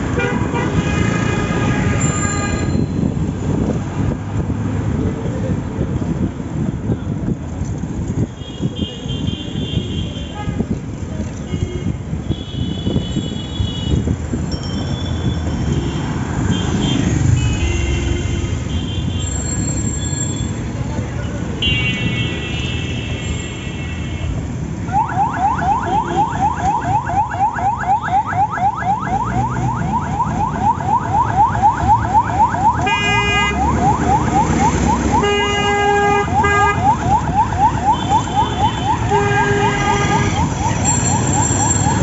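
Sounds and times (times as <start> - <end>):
cycle rickshaw rumbling on road: 0.0 - 27.6, 28.5 - 42.0
ambulance siren whooping: 24.9 - 42.0
high steady ringing tone: 40.8 - 42.0.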